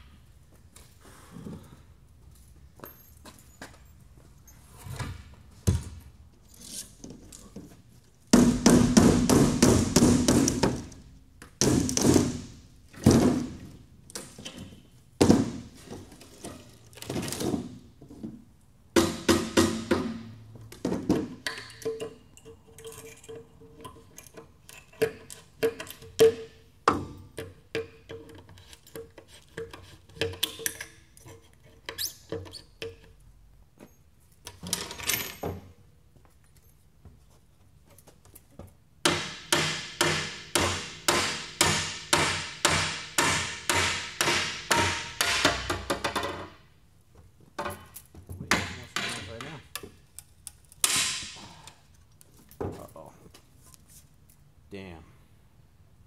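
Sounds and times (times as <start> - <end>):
hammer blows on wooden boards: 8.3 - 10.9, 19.0 - 21.3, 39.0 - 46.2.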